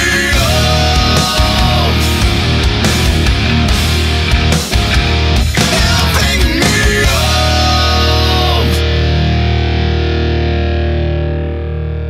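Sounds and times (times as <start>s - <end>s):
distorted guitar and bass chord: 0.0s - 12.0s.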